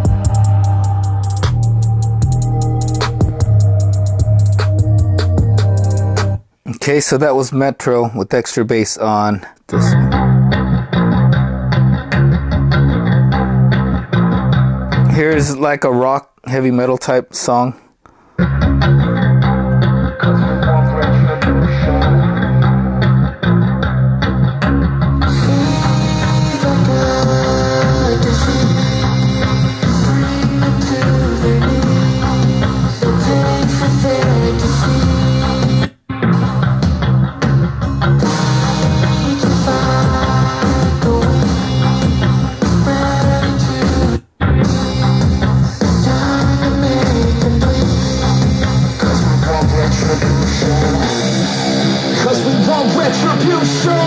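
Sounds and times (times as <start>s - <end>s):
rock song through speaker: 0.0s - 6.4s, 9.8s - 15.6s, 18.4s - 54.0s.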